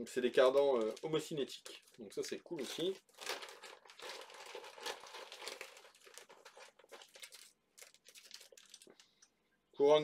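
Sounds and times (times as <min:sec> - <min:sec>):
plastic bag crinkling: 0:00.1 - 0:09.3.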